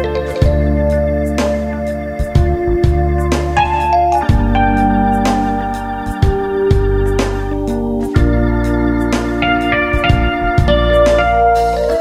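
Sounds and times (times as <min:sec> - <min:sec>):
electronic keyboard music: 0:00.0 - 0:12.0.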